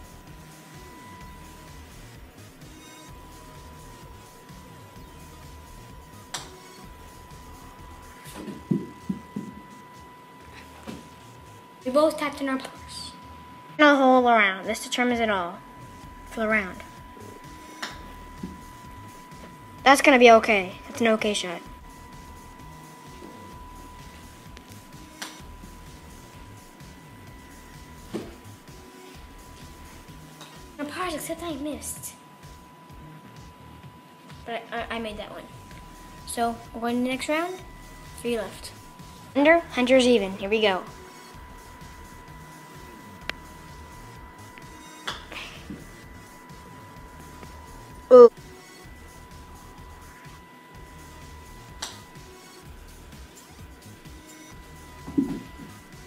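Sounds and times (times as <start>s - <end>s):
faint background music: 0.0s - 56.0s
steady high tone: 0.0s - 56.0s.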